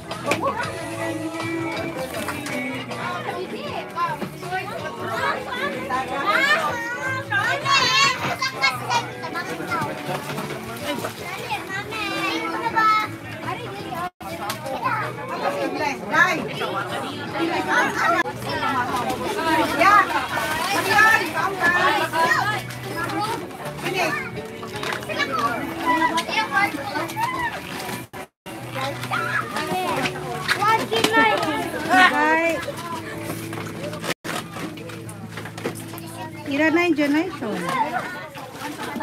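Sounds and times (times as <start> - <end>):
children playing and shouting: 0.0 - 39.0.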